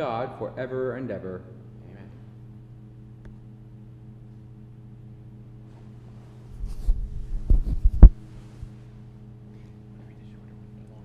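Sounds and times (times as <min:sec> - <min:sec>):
electrical hum: 0:00.0 - 0:11.0
thumps and knocks on microphone: 0:06.6 - 0:08.8.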